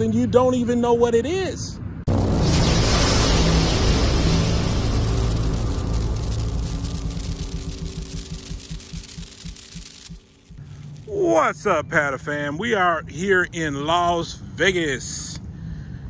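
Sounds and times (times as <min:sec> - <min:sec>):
boom: 0:02.1 - 0:10.7
dense rumble with crackle: 0:02.1 - 0:12.5
low pulsing hum: 0:02.1 - 0:13.8.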